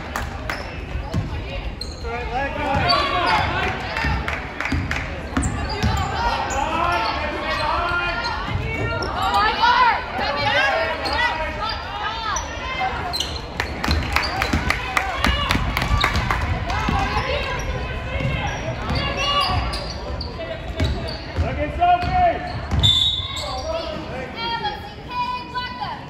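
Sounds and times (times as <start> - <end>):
sneakers squeaking: 0.5 - 9.8, 12.3 - 24.1.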